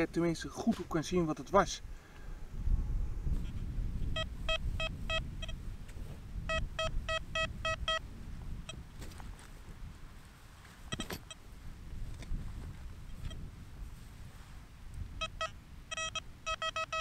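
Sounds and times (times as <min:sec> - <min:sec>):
wind rumbling on microphone: 0:00.0 - 0:17.0
metal detector beeps: 0:03.4 - 0:05.6, 0:06.4 - 0:08.0, 0:08.6 - 0:08.8, 0:10.9 - 0:11.4, 0:13.1 - 0:13.4, 0:15.2 - 0:17.0.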